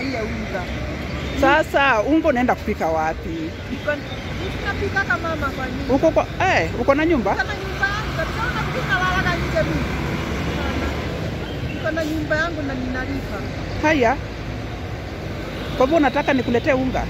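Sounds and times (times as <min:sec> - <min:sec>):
street traffic rumble: 0:00.0 - 0:17.0
woman talking: 0:03.7 - 0:06.2, 0:07.0 - 0:10.0, 0:11.8 - 0:14.1.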